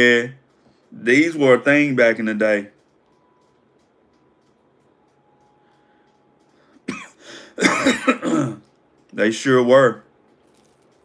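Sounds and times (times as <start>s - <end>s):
man coughing: 6.8s - 8.6s.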